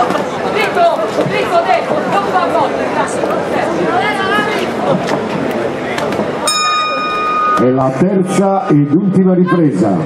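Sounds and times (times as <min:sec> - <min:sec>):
crowd voices: 0:00.0 - 0:10.0
boxing ring bell: 0:06.5 - 0:08.0.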